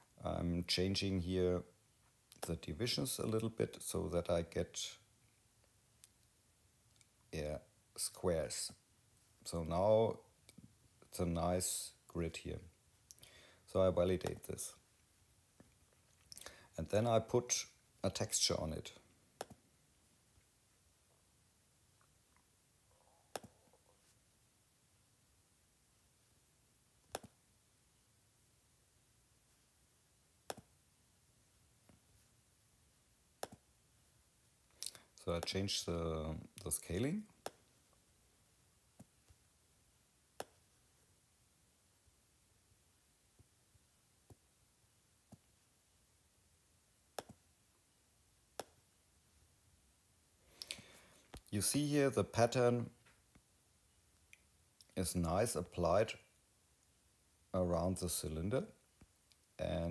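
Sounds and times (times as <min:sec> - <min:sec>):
mouse click: 0:19.4 - 0:19.6, 0:23.3 - 0:23.6, 0:27.1 - 0:27.4, 0:30.4 - 0:30.7, 0:33.4 - 0:33.6, 0:47.2 - 0:47.4
fingertip taps on touchscreen: 0:27.1 - 0:27.4, 0:33.4 - 0:33.6, 0:47.2 - 0:47.4.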